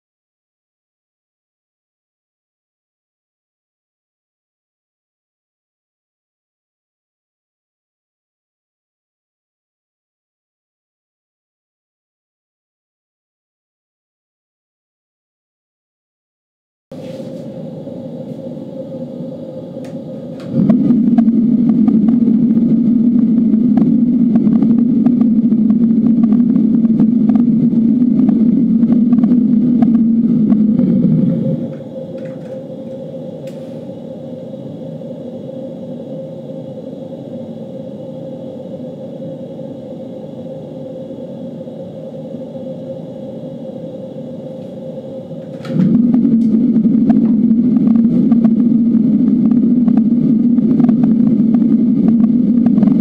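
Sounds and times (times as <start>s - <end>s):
fan running: 16.9s - 53.0s.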